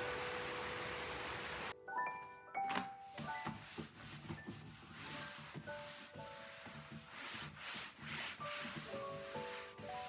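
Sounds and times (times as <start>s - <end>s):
soft background music: 0.0s - 10.0s
cloth rubbing on desktop: 3.1s - 10.0s.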